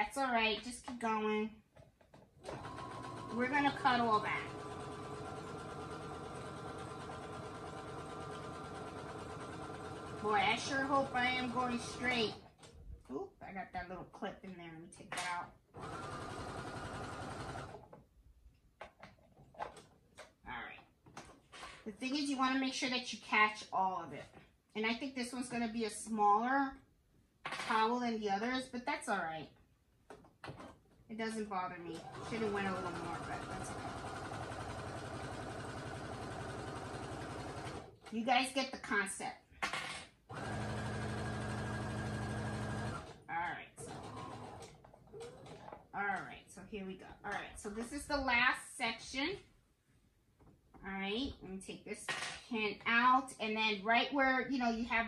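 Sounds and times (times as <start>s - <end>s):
sewing machine stitching: 2.4s - 12.8s, 15.8s - 17.9s, 31.9s - 38.2s, 39.6s - 45.9s.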